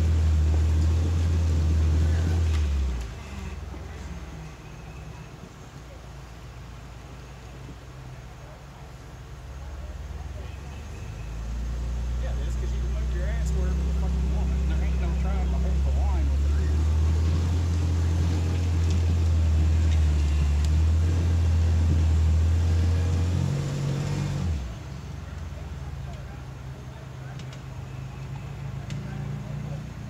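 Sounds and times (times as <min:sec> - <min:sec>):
suv engine revving hard: 0:00.0 - 0:04.5, 0:11.3 - 0:24.8.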